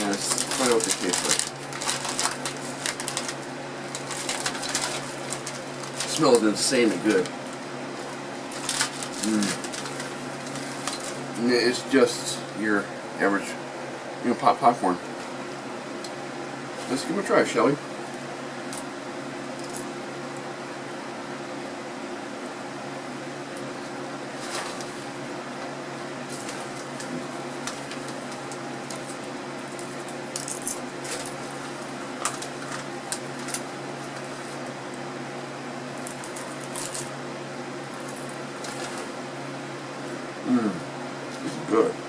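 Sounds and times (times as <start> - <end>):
snack bag crinkling: 0.0 - 7.3, 8.5 - 11.2, 26.3 - 34.6, 36.0 - 37.1
popcorn crunching: 0.0 - 11.6, 19.6 - 20.0, 26.2 - 35.1, 35.9 - 37.2, 37.8 - 39.2
steady low hum: 0.0 - 42.0.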